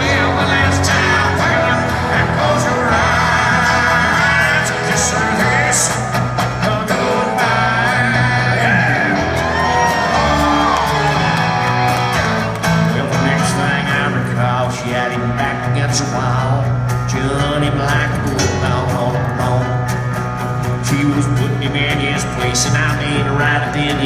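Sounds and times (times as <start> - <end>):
man singing: 0.0 - 10.2, 12.8 - 24.0
acoustic guitar: 0.0 - 24.0
bass: 0.0 - 24.0
keyboard: 0.0 - 24.0.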